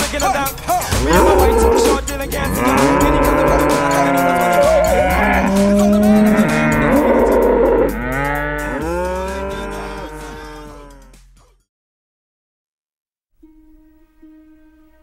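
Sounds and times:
low bass music: 0.0 - 11.6
cattle mooing: 0.9 - 11.1.

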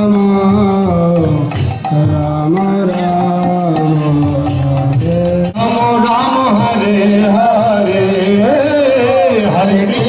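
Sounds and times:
drum and percussion beats: 0.0 - 10.0.

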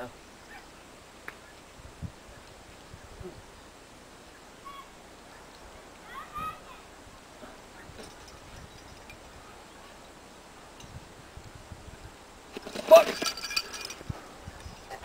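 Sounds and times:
faint outdoor background: 0.0 - 15.0
climbing gear clinking: 7.9 - 9.4, 12.5 - 14.9.

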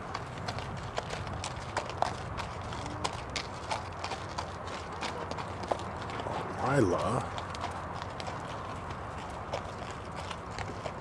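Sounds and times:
horse hoofbeats on sand: 0.0 - 11.0.

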